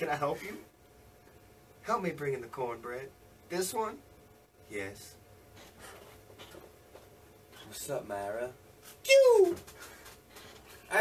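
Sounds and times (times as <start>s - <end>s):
low steady hum: 0.0s - 11.0s
faint rustling and handling: 5.5s - 11.0s.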